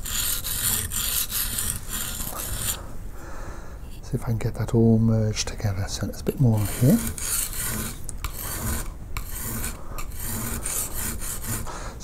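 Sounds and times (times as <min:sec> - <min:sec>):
chisel scraping on bench stone: 0:00.0 - 0:02.8, 0:06.5 - 0:11.7.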